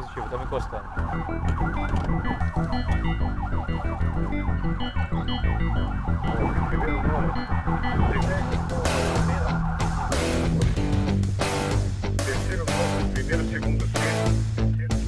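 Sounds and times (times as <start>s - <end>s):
police siren yelp: 0.0s - 11.8s
background music with bass line: 1.0s - 15.0s.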